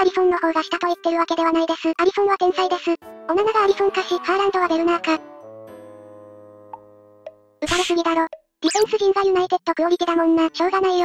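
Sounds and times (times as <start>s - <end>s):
synthesized narration voice: 0.0s - 5.2s, 7.6s - 11.0s
background music held chord: 3.0s - 7.6s.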